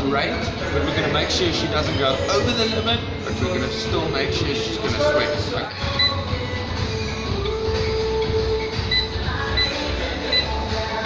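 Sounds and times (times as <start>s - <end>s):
exercise bike console beeping: 5.8s - 6.5s, 7.4s - 10.8s.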